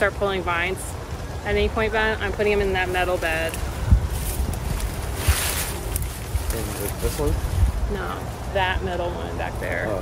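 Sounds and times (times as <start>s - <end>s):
leafy vines rustling: 0.0s - 10.0s
wind buffeting microphone: 0.1s - 10.0s.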